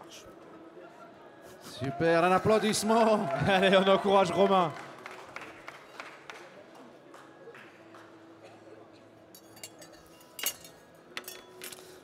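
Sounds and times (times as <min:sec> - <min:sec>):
glassware and bar tools clinking: 0:09.3 - 0:12.0.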